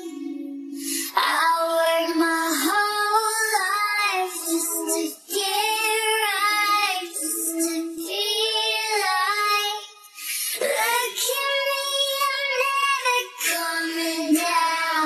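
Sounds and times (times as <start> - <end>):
woman singing wordless pop vocals: 0.0 - 15.0.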